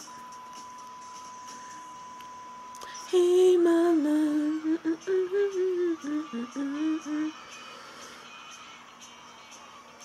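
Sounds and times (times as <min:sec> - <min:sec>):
faint pop music: 0:00.0 - 0:10.0.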